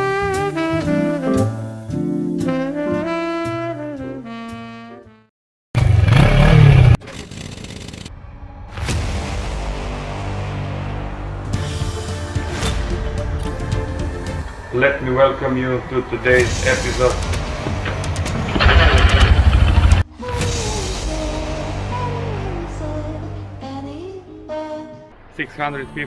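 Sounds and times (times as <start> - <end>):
motorcycle engine revving: 5.8 - 8.1, 16.6 - 20.1.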